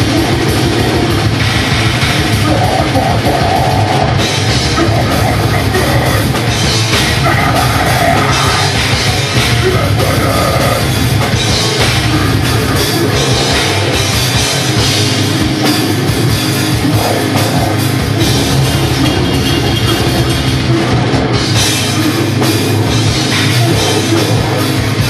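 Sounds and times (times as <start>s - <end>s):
distorted electric guitars: 0.0s - 25.0s
rapid kick drums: 0.0s - 25.0s.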